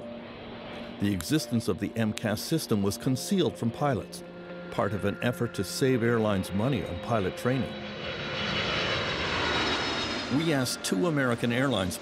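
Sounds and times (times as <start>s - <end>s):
jet airliner flying overhead: 0.0s - 12.0s.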